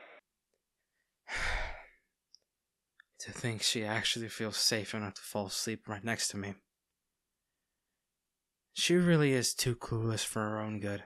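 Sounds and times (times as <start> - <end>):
man sighing: 1.3 - 1.8.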